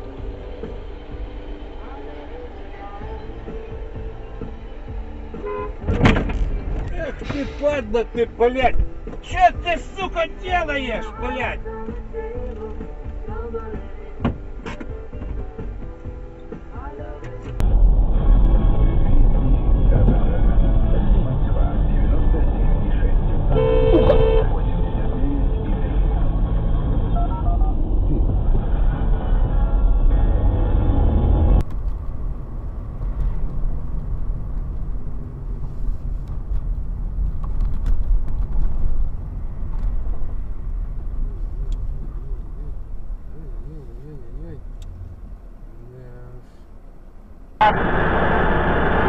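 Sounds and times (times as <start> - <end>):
car engine and road noise: 0.0 - 49.0
car horn blast: 5.3 - 6.2, 23.5 - 24.7, 47.6 - 49.0.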